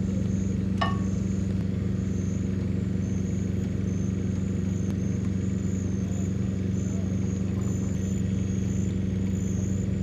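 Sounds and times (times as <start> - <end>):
large engine idling: 0.0 - 10.0
thin high tone: 0.8 - 1.2.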